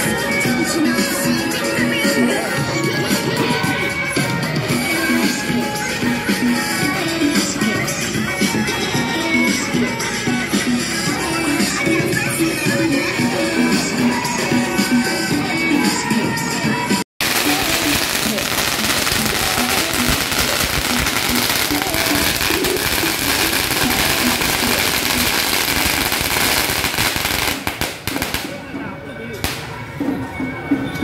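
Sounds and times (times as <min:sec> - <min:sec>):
firecrackers crackling: 0:17.2 - 0:28.8, 0:29.4 - 0:29.8.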